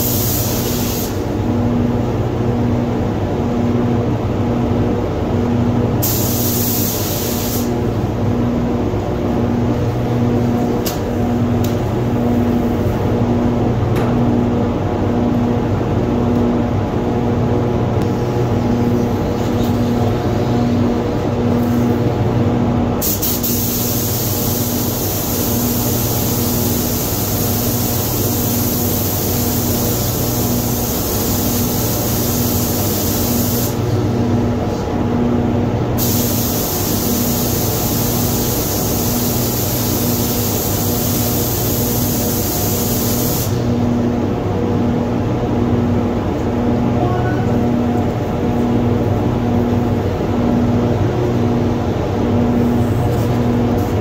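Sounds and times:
spray gun air hissing: 0.0 - 1.3, 6.0 - 7.8, 23.0 - 33.9, 36.0 - 43.7
ventilation hum: 0.0 - 54.0.

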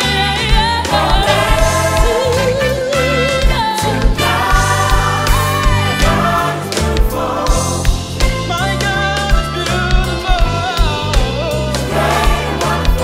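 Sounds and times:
gospel band with horns: 0.0 - 13.0
choir singing: 0.1 - 8.2, 11.4 - 13.0.

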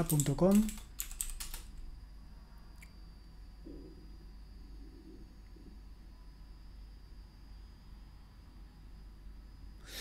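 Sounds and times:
typing on computer keyboard: 0.0 - 1.8.

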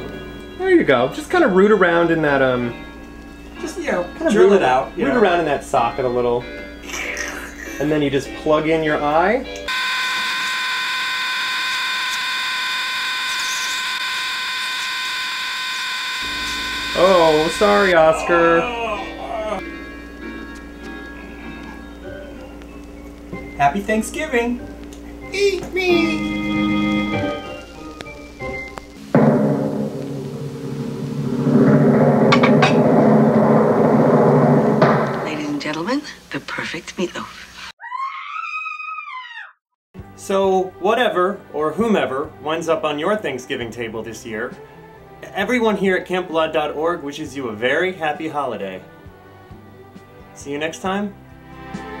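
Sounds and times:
room sound: 9.6 - 37.8
buzzy electronic tone: 9.7 - 18.8
sharp percussive strikes: 29.0 - 35.7
timpani hit: 29.0 - 35.8.

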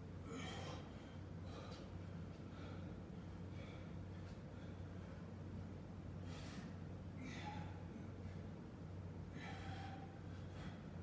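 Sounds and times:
steady low hum: 0.0 - 11.0
man breathing hard: 0.2 - 5.3, 6.2 - 8.3, 9.2 - 11.0.

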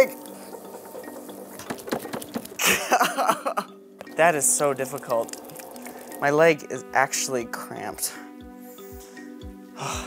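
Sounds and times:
background music: 0.0 - 10.0
wet clay squelching on pottery wheel: 4.1 - 6.4.

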